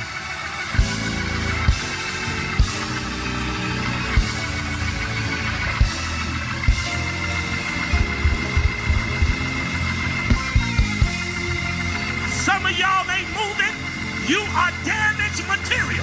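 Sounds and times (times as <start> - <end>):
low sustained chords with bass: 0.0 - 16.0
drum hits: 7.9 - 9.7.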